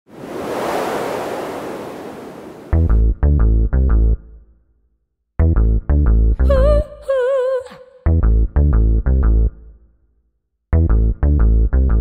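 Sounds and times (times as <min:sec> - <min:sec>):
rushing wash of noise: 0:00.1 - 0:02.9.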